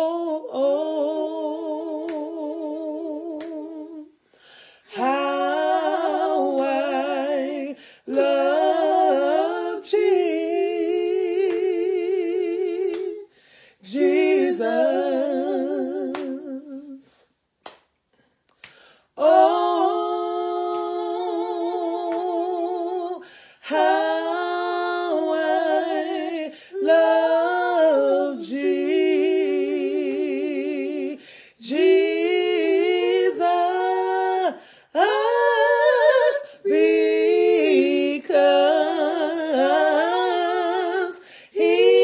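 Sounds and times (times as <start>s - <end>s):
woman singing a cappella: 0.0s - 4.2s, 4.9s - 17.2s, 19.2s - 42.0s
woman breathing: 4.1s - 4.9s, 7.8s - 8.1s, 13.2s - 13.8s, 18.2s - 19.2s, 23.2s - 23.6s, 31.2s - 31.6s, 34.6s - 34.9s, 41.2s - 41.6s
quick breath: 4.2s - 4.9s, 13.3s - 13.8s.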